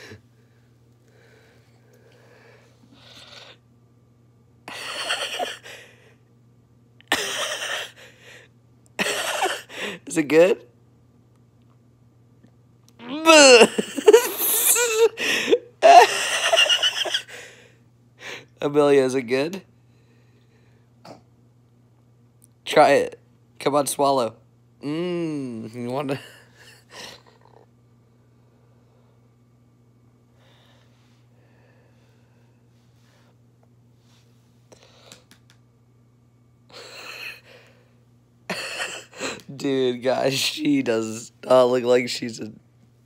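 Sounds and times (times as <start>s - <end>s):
breathy laughter: 13.5s - 17.5s.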